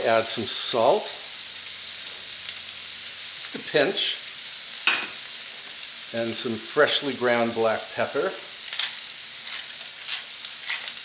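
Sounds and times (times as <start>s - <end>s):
vegetables sizzling in a skillet: 0.0s - 11.0s.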